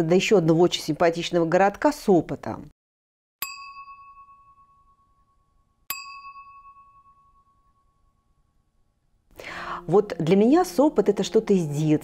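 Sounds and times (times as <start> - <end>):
bell-like ding chimes: 3.4 - 8.7.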